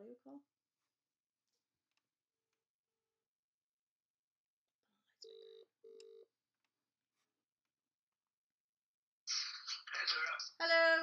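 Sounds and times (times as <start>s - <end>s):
phone ringback tone: 5.2s - 6.3s.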